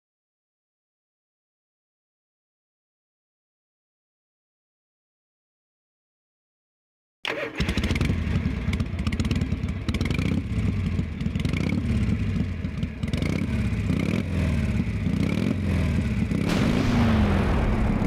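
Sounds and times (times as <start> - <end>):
motorcycle engines revving: 7.3 - 16.7.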